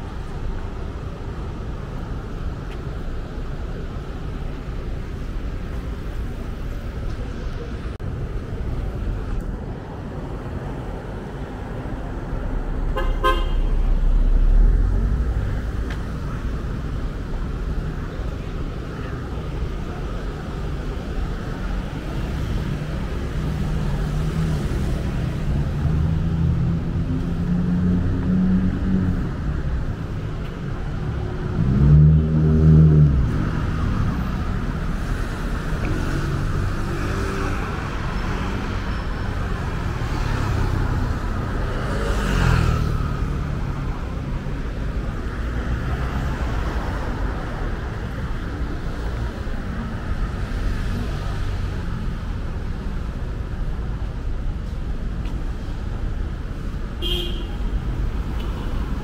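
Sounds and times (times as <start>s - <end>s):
street traffic: 0.0s - 59.0s.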